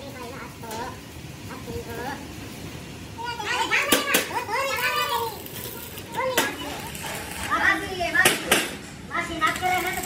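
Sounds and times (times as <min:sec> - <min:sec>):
children calling and chattering: 0:00.0 - 0:10.0.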